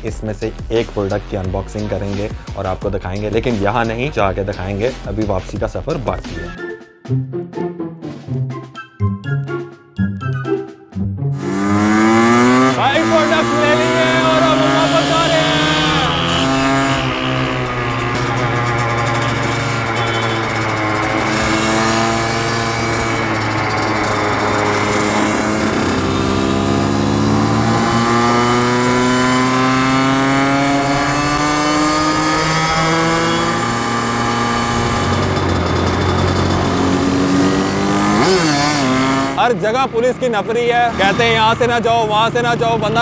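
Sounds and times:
dirt bike engine revving: 11.3 - 43.0
low engine drone: 11.4 - 28.7.

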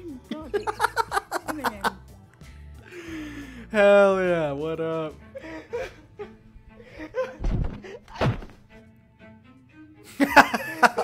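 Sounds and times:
music playing: 0.0 - 11.0
person dropping onto wooden floor: 7.4 - 8.7.

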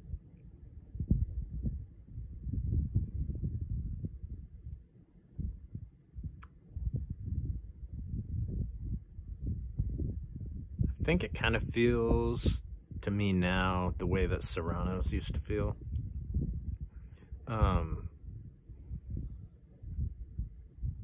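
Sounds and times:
low rumbling and thumping on microphone: 0.0 - 4.8, 5.4 - 21.0.

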